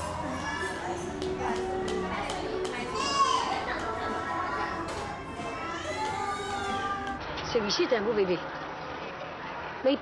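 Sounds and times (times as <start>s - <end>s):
adults chattering: 0.0s - 7.2s.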